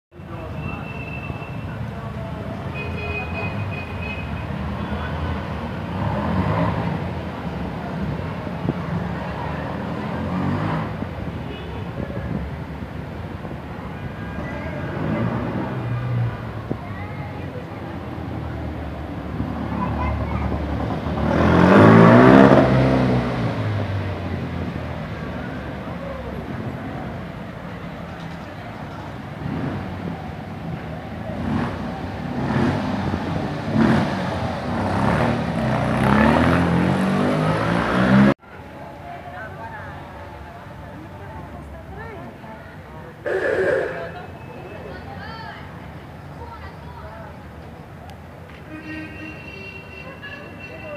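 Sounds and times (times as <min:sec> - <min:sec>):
street traffic: 0:00.1 - 0:50.9
people's voices: 0:00.2 - 0:36.3, 0:37.6 - 0:50.9.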